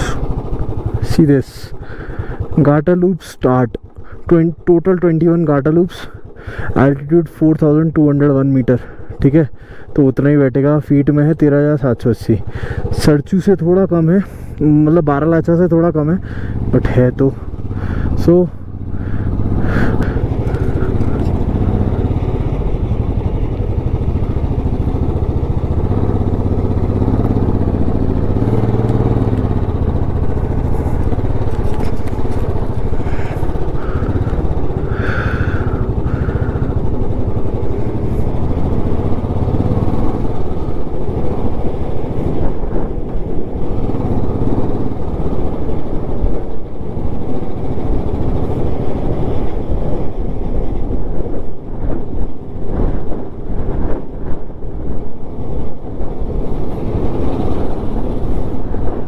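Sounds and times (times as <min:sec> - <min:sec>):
motorcycle engine running: 0:00.0 - 0:10.0, 0:12.4 - 0:59.0.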